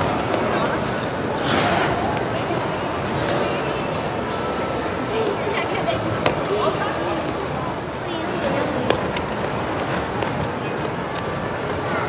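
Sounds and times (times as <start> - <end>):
skates on ice: 0.0 - 2.3.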